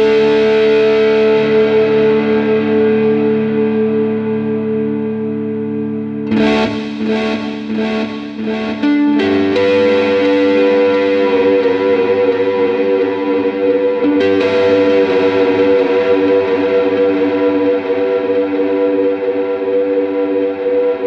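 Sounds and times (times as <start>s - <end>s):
overdriven electric guitar chords: 0.0s - 21.0s.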